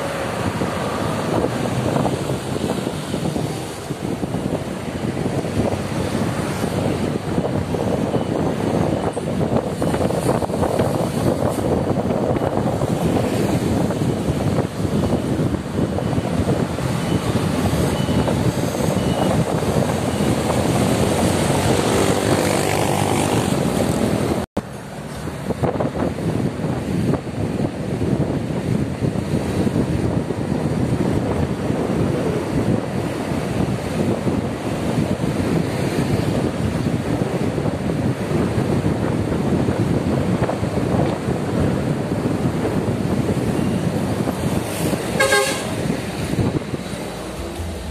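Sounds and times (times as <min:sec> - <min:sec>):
motorcycle riding at speed: 0:00.0 - 0:47.9
vehicle horn toot: 0:45.1 - 0:45.9.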